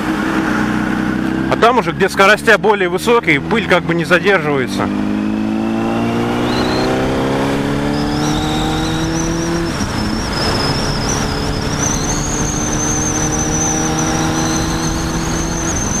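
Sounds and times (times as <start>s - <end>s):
motorcycle engine accelerating: 0.0s - 16.0s
wind rushing: 4.6s - 16.0s.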